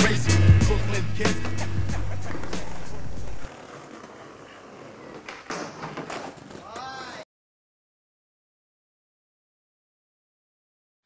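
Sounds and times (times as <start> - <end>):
hip-hop backing music: 0.0 - 3.5
skateboard wheels rolling on paving: 1.2 - 7.2.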